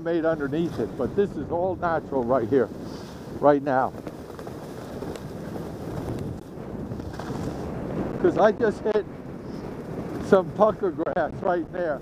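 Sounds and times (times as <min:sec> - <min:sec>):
skis scraping over snow: 0:00.0 - 0:12.0
wind on microphone: 0:00.0 - 0:12.0.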